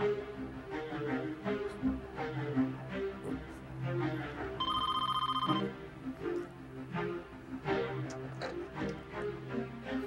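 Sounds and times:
film music: 0.0 - 10.0
telephone trilling ring: 4.6 - 5.7.

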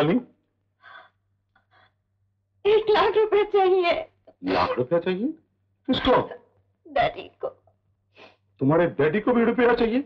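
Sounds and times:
woman sobbing: 4.4 - 4.8.

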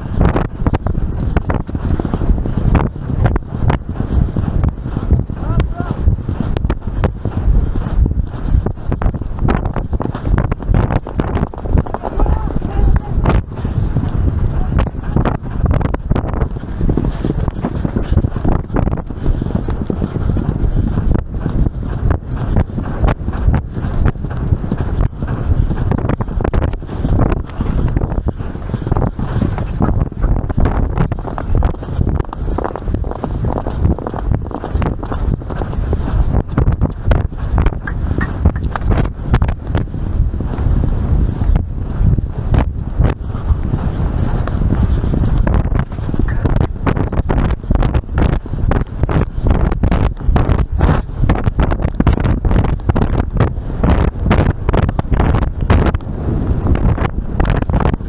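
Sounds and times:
horse hoofbeats on turf: 0.0 - 58.0
wind rumbling on microphone: 0.0 - 58.0.

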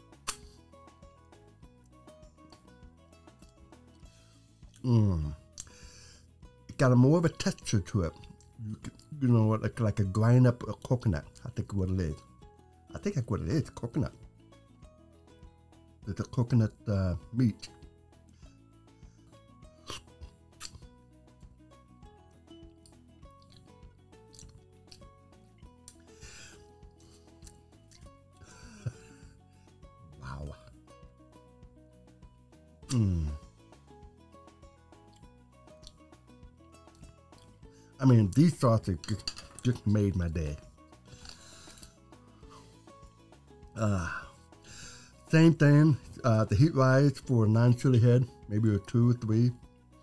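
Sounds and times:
quiet background music: 0.0 - 50.0.

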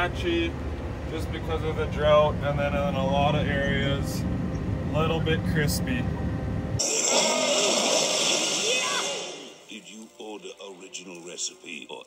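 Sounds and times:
engine rumble in cab: 0.0 - 6.8
cartoon fire-breathing hiss: 6.8 - 9.7.

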